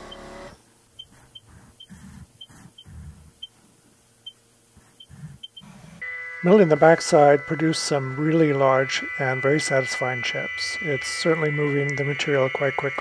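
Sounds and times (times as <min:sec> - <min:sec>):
milling machine drives whining: 0:05.0 - 0:13.0.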